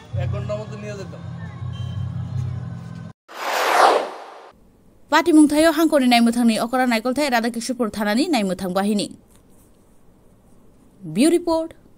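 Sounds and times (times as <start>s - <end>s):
whoosh transition effect: 3.3s - 4.5s.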